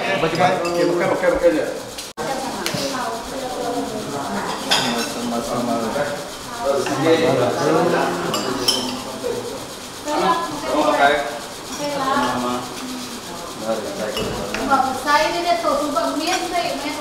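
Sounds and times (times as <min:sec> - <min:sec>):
voices in room: 0:00.0 - 0:17.0
spoons and plates clinking: 0:04.4 - 0:05.5, 0:08.3 - 0:09.2, 0:14.1 - 0:14.6.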